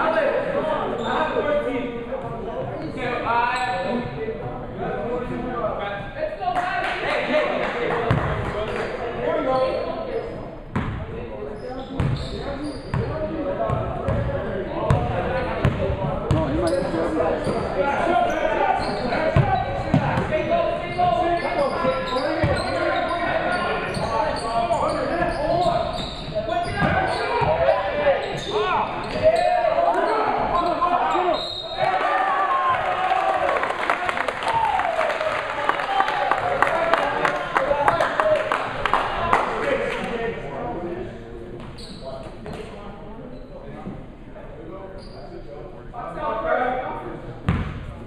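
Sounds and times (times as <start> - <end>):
echoing crowd chatter: 0.0 - 48.0
sneakers squeaking: 2.7 - 4.2, 8.1 - 32.0, 41.6 - 42.7, 44.9 - 45.4, 47.5 - 47.9.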